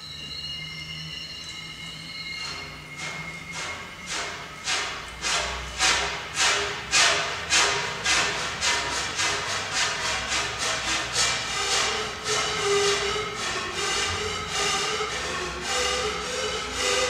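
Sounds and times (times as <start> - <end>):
panpipe blown in breathy puffs: 7.5 - 17.0.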